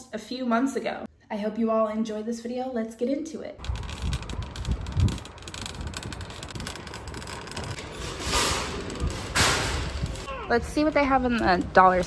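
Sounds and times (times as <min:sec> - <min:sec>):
plastic shopping cart rattling: 0:03.6 - 0:10.3
wind rumble on microphone: 0:03.6 - 0:12.0.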